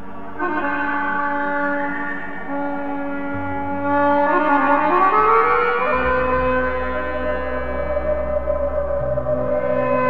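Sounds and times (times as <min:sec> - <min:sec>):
low drone: 0:00.0 - 0:10.0
solo wind instrument: 0:00.0 - 0:10.0.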